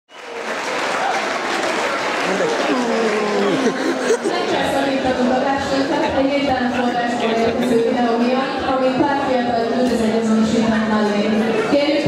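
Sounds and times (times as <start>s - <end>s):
audience applauding: 0.1s - 4.6s
faint voices: 1.0s - 12.0s.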